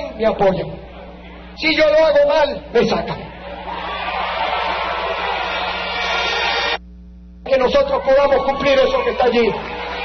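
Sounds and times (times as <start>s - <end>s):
crowd applauding: 3.4s - 6.8s, 8.4s - 10.0s.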